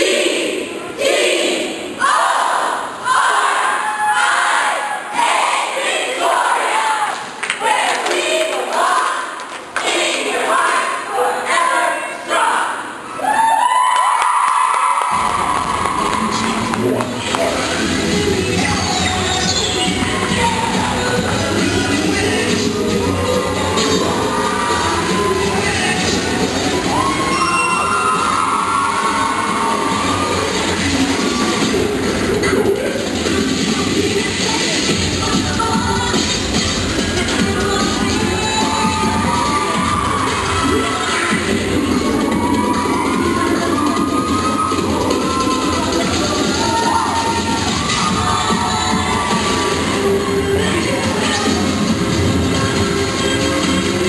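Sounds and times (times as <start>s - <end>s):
cheerleaders chanting in unison: 0.0s - 13.1s, 15.2s - 54.0s
long high squealing tone: 27.1s - 29.4s.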